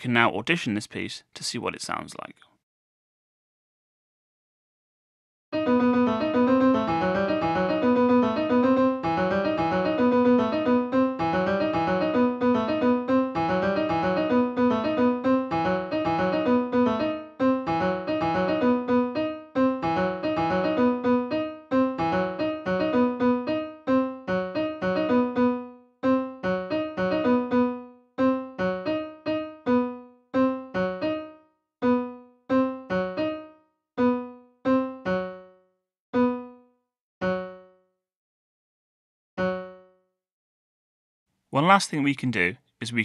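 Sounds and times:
computer-generated piano phrase: 0:05.5 - 0:38.0, 0:39.4 - 0:40.1.

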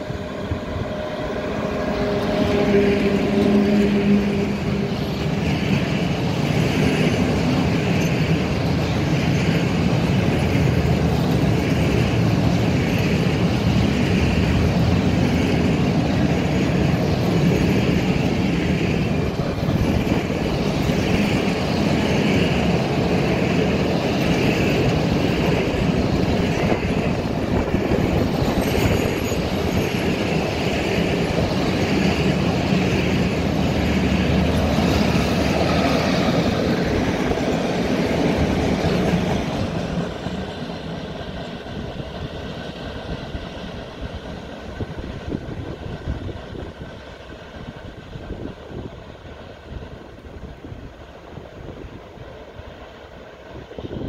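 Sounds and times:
freight train wheels rumbling on rail: 0:00.0 - 0:54.0.

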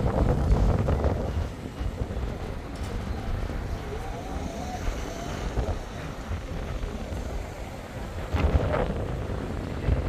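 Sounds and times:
street traffic: 0:00.0 - 0:10.0
wind buffeting microphone: 0:00.0 - 0:10.0.

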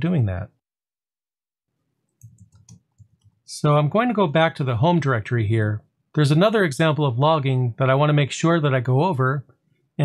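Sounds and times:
faint keyboard keystrokes: 0:02.1 - 0:03.4.

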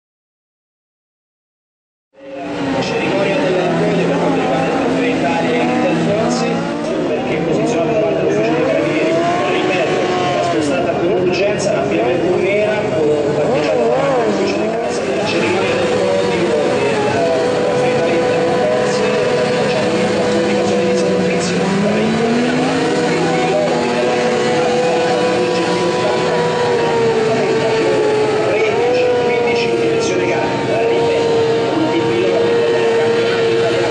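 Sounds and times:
motorcycle engines revving: 0:02.2 - 0:33.9.

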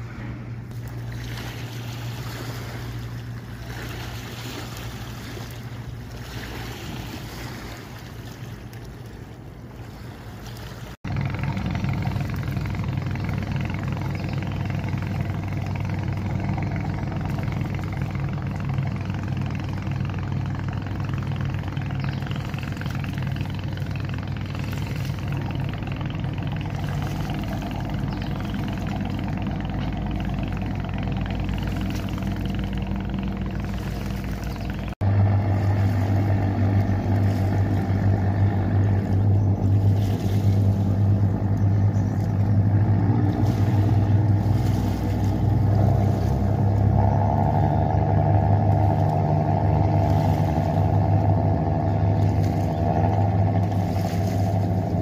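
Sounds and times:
boat engine hum: 0:00.0 - 0:55.0.

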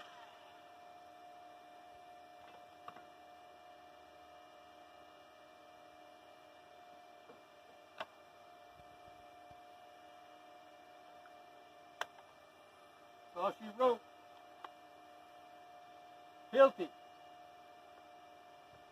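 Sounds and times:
faint steady hum: 0:00.0 - 0:18.9.

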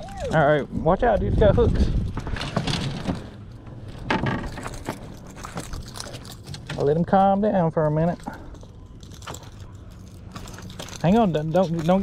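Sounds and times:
steady low rumble: 0:00.0 - 0:12.0
lure hooks rattling: 0:04.3 - 0:07.0, 0:08.0 - 0:12.0.

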